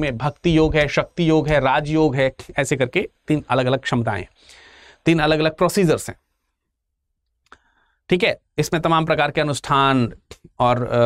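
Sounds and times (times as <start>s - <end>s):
man speaking: 0.0s - 4.3s, 5.0s - 6.2s, 8.1s - 11.0s.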